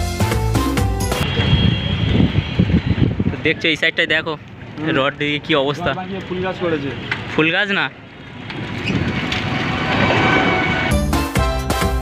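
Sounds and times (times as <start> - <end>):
background music: 0.0 - 1.2, 10.7 - 12.0
road noise: 0.0 - 12.0
wind on microphone: 1.2 - 3.6, 8.4 - 10.9.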